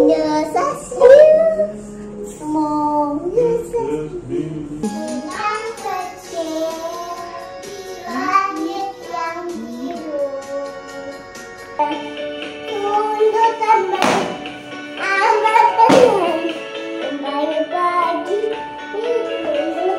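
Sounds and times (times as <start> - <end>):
backing track music: 4.2 - 19.9
girl singing: 4.9 - 14.0, 15.0 - 19.9.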